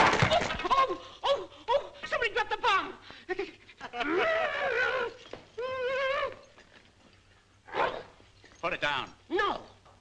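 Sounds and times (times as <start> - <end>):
man's warbling comic cry: 3.9 - 6.4.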